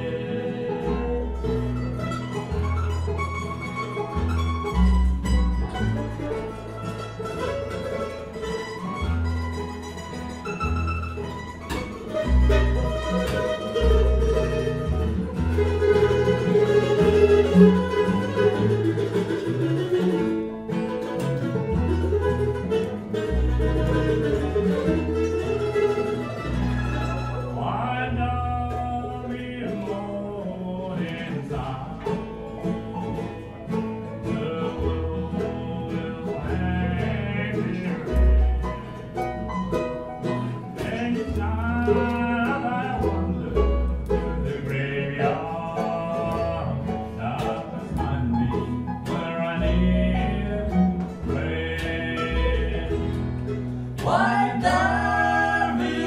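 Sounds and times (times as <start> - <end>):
acoustic guitar: 0.0 - 56.0
banjo: 0.0 - 56.0
mandolin: 0.0 - 56.0
upright bass notes: 0.0 - 56.0.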